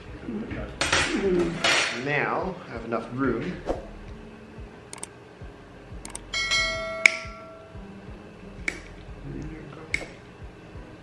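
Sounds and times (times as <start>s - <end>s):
mouse clicks: 4.9s - 5.1s, 6.0s - 6.2s
bell chime: 6.3s - 7.8s.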